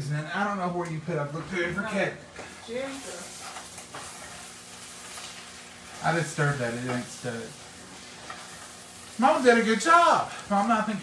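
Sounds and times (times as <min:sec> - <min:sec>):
faint stirring scrapes: 0:02.4 - 0:09.6
meat sizzling in a pan: 0:02.4 - 0:11.0.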